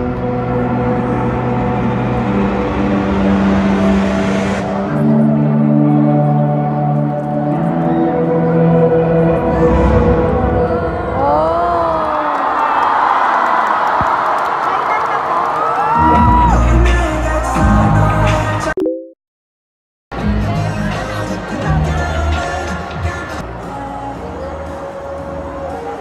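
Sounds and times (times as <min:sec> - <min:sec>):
slow synth chords: 0:00.0 - 0:12.0
crowd screaming and cheering: 0:00.0 - 0:18.7, 0:20.1 - 0:26.0.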